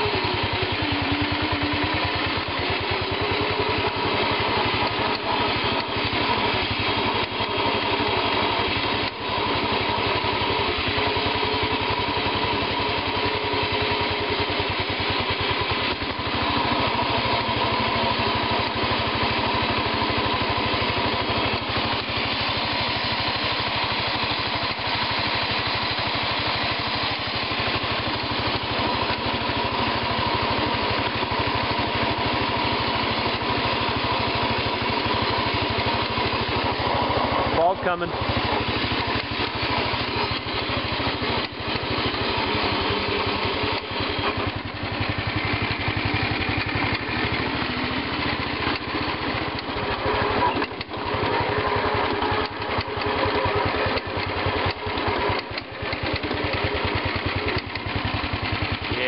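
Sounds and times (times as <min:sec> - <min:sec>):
garden tractor engine running: 0:00.0 - 0:59.0.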